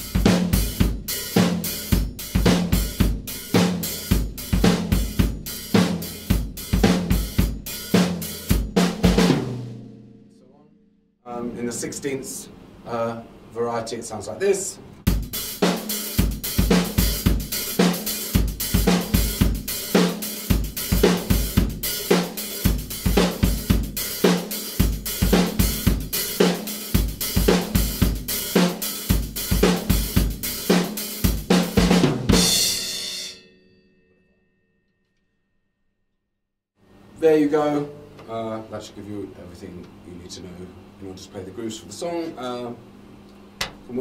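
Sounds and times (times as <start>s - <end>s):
disco drum groove: 0.0s - 10.0s, 15.1s - 33.1s
cymbal ringing: 32.3s - 35.2s.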